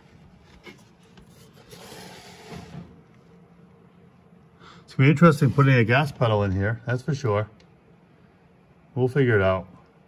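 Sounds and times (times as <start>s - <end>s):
faint rubbing and handling noise: 0.0s - 4.3s.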